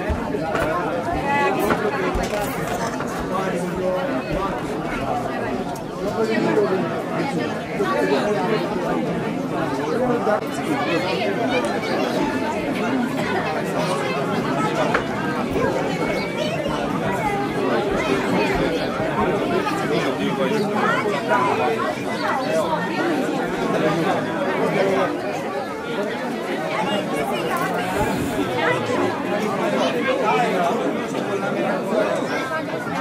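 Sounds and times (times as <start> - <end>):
crowd chatter: 0.0 - 33.0.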